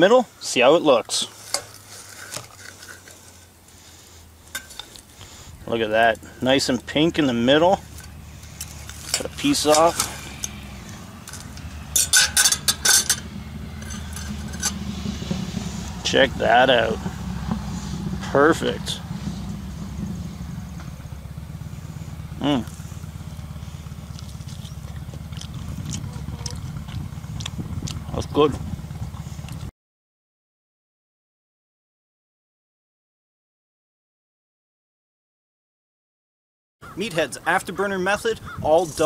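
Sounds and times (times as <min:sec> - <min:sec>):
low background rumble: 0:02.5 - 0:29.7
cutlery scraping on plate: 0:11.3 - 0:14.8.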